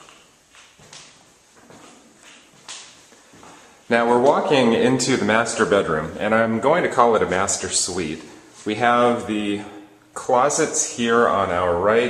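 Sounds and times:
footsteps on tile floor: 0.0s - 4.6s.

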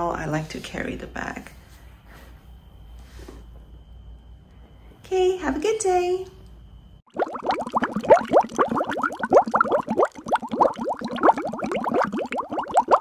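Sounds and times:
water bubbling: 7.1s - 13.0s.

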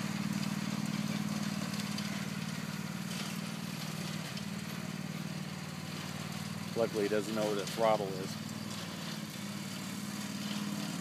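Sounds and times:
riding lawn mower engine: 0.0s - 11.0s.

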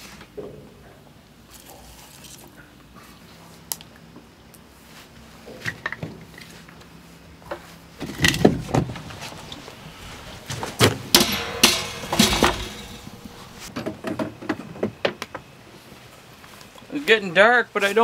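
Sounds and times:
firewood knocking and clattering: 8.0s - 15.4s.

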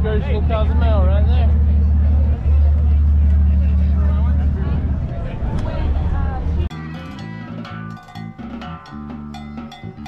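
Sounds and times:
faint voices talking: 0.0s - 7.8s.

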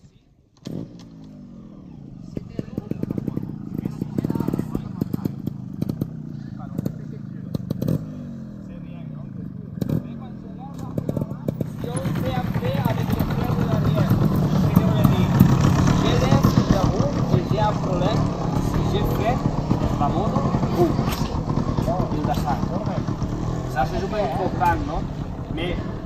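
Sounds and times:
motorcycles idling: 0.8s - 26.0s
indistinct voices: 9.8s - 26.0s.

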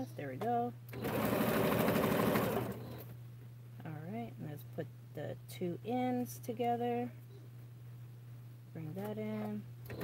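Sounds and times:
sewing machine stitching: 0.9s - 3.0s.

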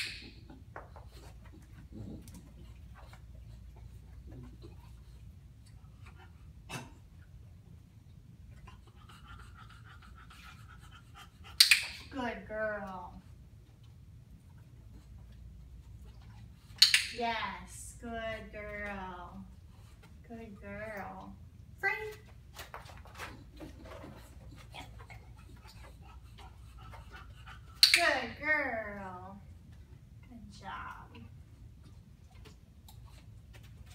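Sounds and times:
dog panting: 8.4s - 11.6s, 22.8s - 27.8s
dog-training clicker click: 16.8s - 17.2s.

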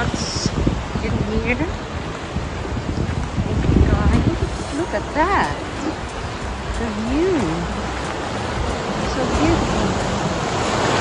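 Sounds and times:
waves breaking on rocky shore: 0.0s - 11.0s
wind buffeting microphone: 0.0s - 11.0s.

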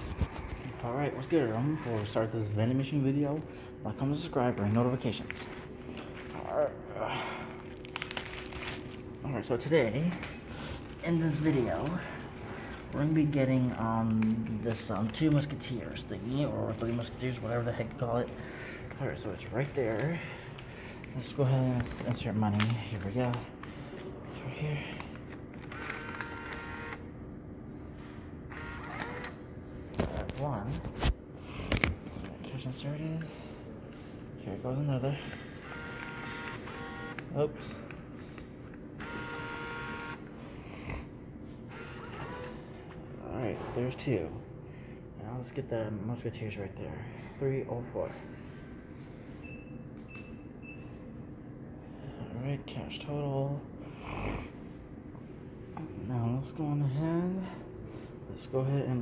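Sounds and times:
low steady background hum: 0.0s - 59.0s
bill acceptor motor whirring: 25.6s - 27.1s, 28.5s - 29.4s, 35.6s - 37.3s, 39.0s - 40.3s, 41.7s - 42.6s.

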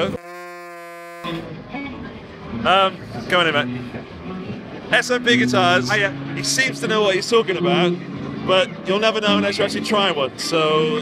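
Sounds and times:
electronic buzzing tone: 0.0s - 1.5s.

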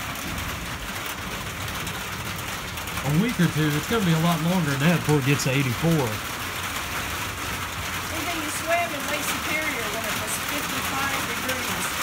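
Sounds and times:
rain on a tin roof: 0.0s - 12.0s.

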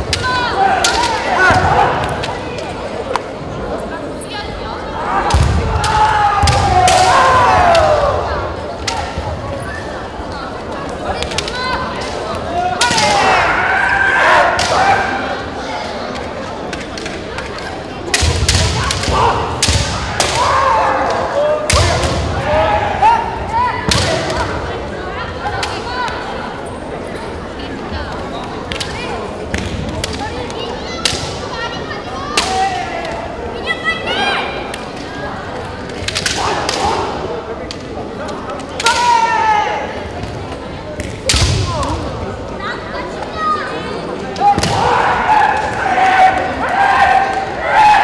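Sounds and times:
hubbub of hall: 0.0s - 48.0s
bamboo swords clacking: 35.9s - 37.1s
long drawn-out shouts: 44.4s - 48.0s.

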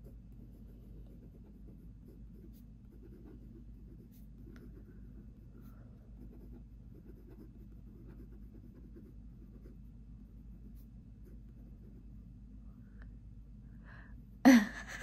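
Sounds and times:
pen scratching on paper: 0.0s - 12.1s
steady low hum: 0.0s - 15.0s.

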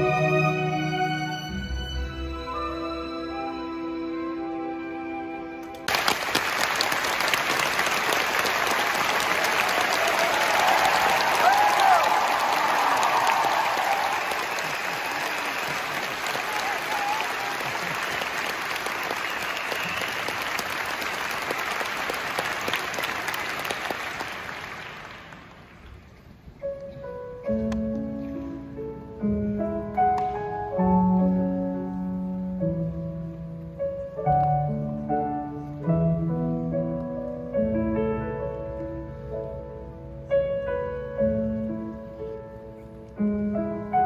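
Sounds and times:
audience cheering: 5.9s - 25.1s
audience applauding: 5.9s - 25.8s.

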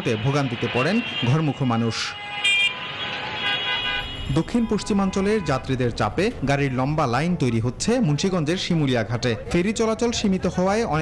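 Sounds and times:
vehicle horns honking: 0.0s - 5.8s
road traffic noise: 0.0s - 11.0s.

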